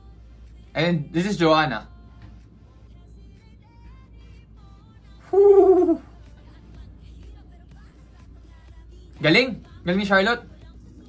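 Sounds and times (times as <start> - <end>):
faint background music: 0.0 - 11.0
man exclaiming ooh: 5.2 - 6.1.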